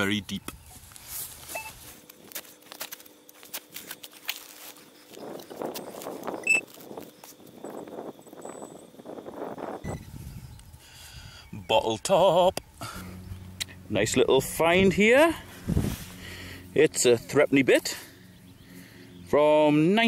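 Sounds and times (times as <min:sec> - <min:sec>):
soil crumbling scrapes: 0:00.8 - 0:07.4, 0:15.3 - 0:16.4.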